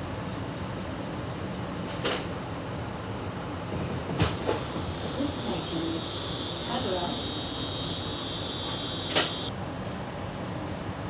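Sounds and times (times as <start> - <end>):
train door thudding shut: 3.8 - 5.7, 8.7 - 9.4
cicadas chorus: 4.4 - 9.5.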